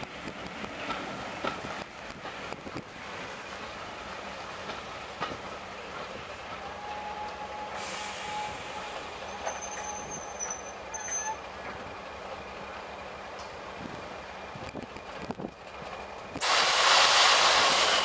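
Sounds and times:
train coaches rolling on track: 0:00.0 - 0:18.0
train wheel squeal: 0:06.6 - 0:11.6, 0:16.4 - 0:18.0
short hiss: 0:16.4 - 0:18.0.

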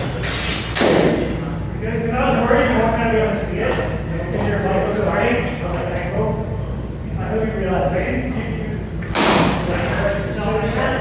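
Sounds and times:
loud thud of a strike: 0:09.1 - 0:09.7.

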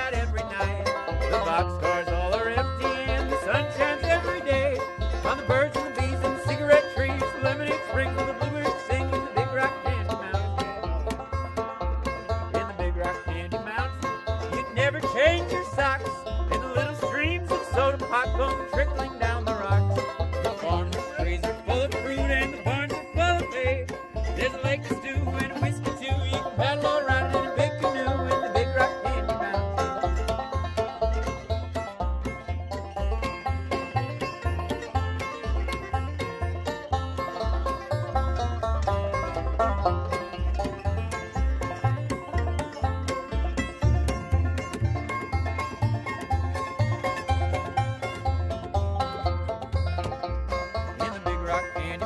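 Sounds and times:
banjo picking a melody: 0:00.0 - 0:52.0
strummed acoustic guitar: 0:00.0 - 0:52.0
upright bass plucked: 0:00.0 - 0:52.0.

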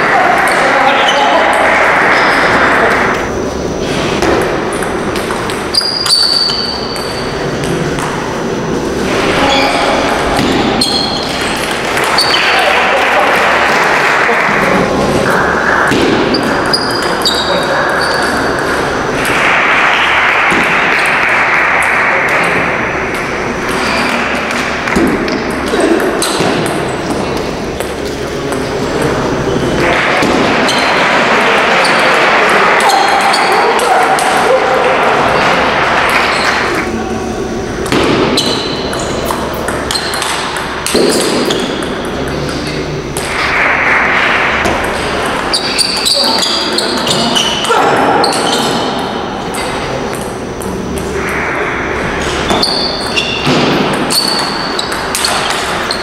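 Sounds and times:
hall noise: 0:00.0 - 0:56.0
voices: 0:00.0 - 0:56.0.

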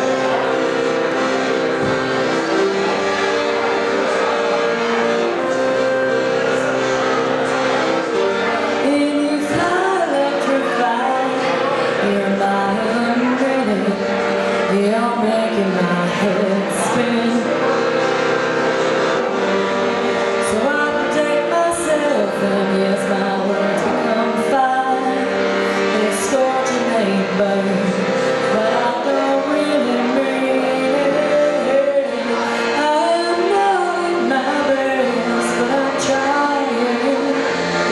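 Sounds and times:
person singing: 0:00.0 - 0:37.9
piano accordion chords: 0:00.0 - 0:37.9.

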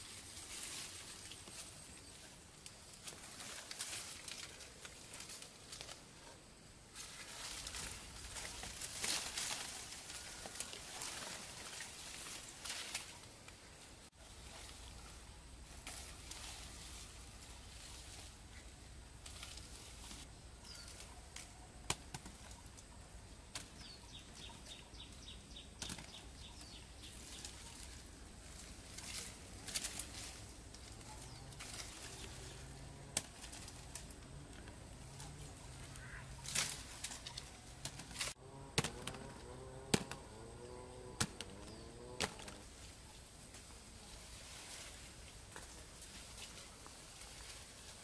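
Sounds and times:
branches rustling: 0:00.0 - 0:48.0
fruit snapping off: 0:37.8 - 0:40.2, 0:41.2 - 0:41.6, 0:42.2 - 0:42.6.

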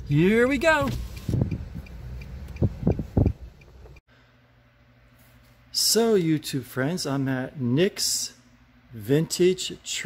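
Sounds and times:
car cabin rumble: 0:00.0 - 0:04.0.

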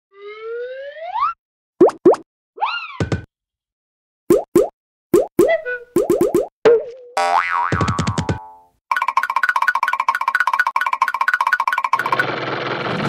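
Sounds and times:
cartoon squeak: 0:02.6 - 0:03.0, 0:05.4 - 0:06.0.

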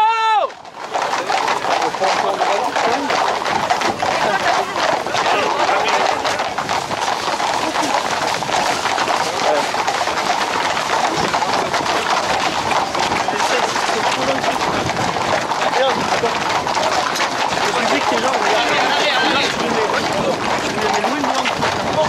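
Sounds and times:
crowd voices and shouts: 0:00.0 - 0:22.0
hooves clip-clopping on pavement: 0:00.0 - 0:22.0.

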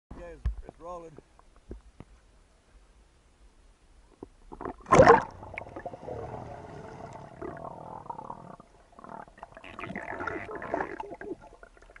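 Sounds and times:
underwater bubbling and gurgling: 0:04.5 - 0:12.0
loud splash into water: 0:04.8 - 0:05.6.

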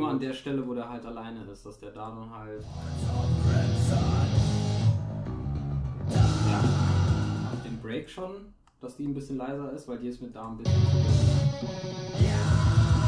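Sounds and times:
black metal song with electric guitar: 0:02.6 - 0:07.8, 0:10.6 - 0:13.0.

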